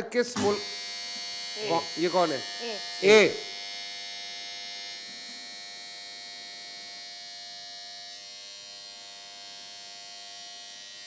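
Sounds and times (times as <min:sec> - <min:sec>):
continuous electronic buzzer: 0:00.0 - 0:11.0.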